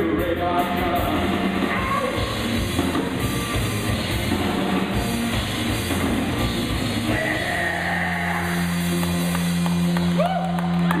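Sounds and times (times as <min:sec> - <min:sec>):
electric guitar and bass chord ringing: 0:01.2 - 0:11.0.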